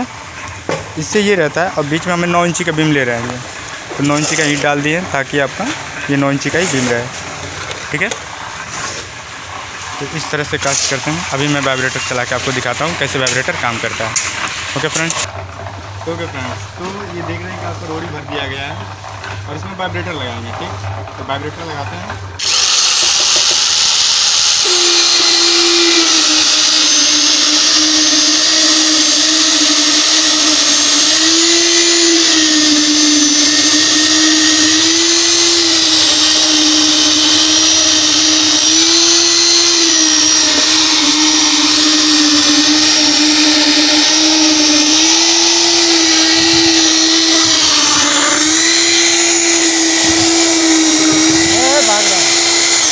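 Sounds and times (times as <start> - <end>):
concrete vibrator motor whine: 0.0 - 52.9.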